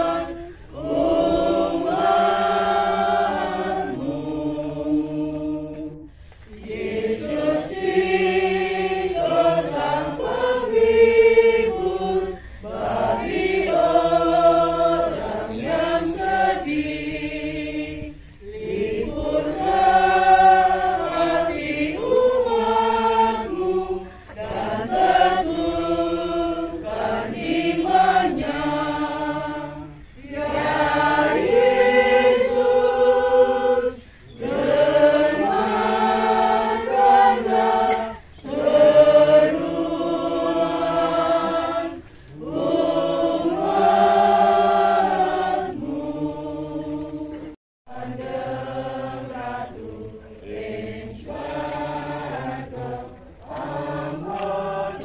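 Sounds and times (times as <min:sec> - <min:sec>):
congregation singing: 0:00.0 - 0:55.0.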